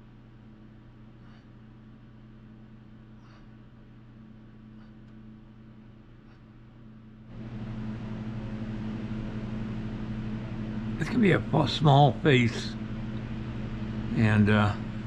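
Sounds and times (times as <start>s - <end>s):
heater electric hum: 0.0s - 15.0s.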